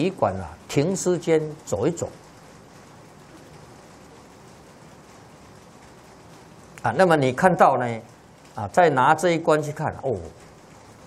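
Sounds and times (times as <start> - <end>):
steady recording hiss: 0.0 - 11.0.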